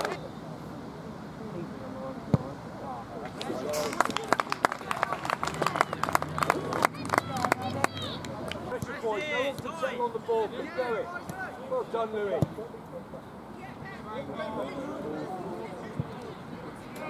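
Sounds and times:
distant shouts and calls: 0:03.9 - 0:16.8.

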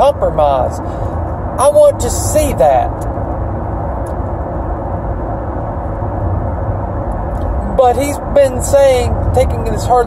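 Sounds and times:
car engine and road rumble: 0:00.0 - 0:10.0.

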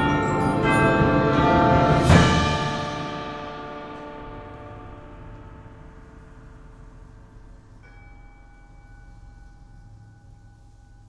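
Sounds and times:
ringing metal percussion chord: 0:00.0 - 0:11.0.

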